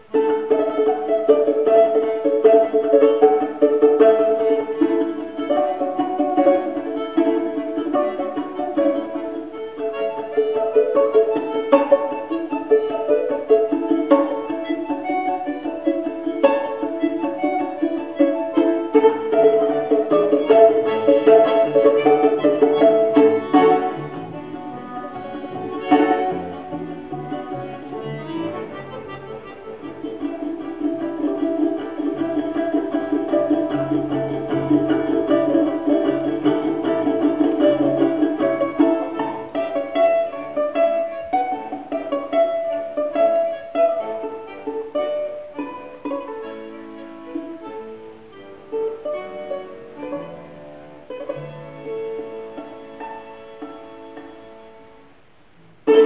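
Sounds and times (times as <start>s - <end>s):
button accordion: 0.0s - 49.4s
plucked string instruments: 0.0s - 56.0s.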